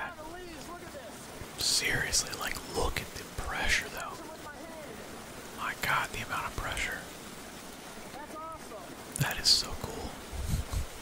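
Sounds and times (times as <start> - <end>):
water gushing from culvert: 0.0 - 11.0.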